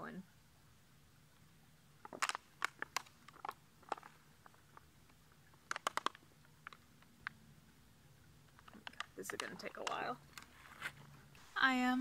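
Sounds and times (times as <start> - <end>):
plastic pouch crinkling and clicking: 2.0 - 7.4, 8.5 - 11.0.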